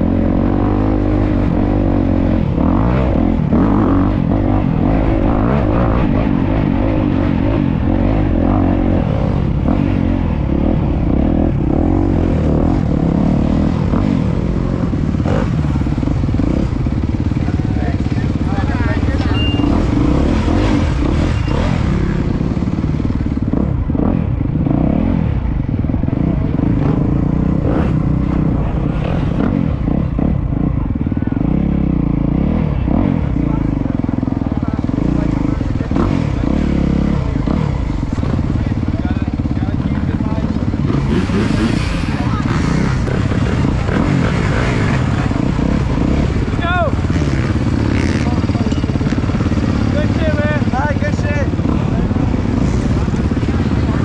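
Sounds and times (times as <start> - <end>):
dirt bike engine running: 0.0 - 54.0.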